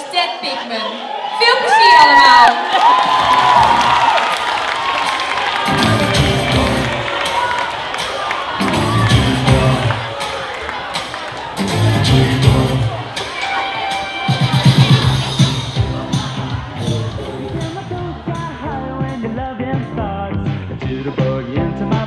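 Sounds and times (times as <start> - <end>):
audience cheering and shouting: 0.0 - 19.7
drums and bass beat: 3.0 - 4.0, 5.0 - 22.0
live band playing: 3.4 - 22.0.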